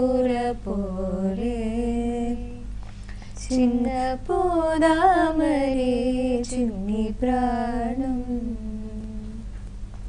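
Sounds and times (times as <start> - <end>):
woman singing a lullaby: 0.0 - 9.6.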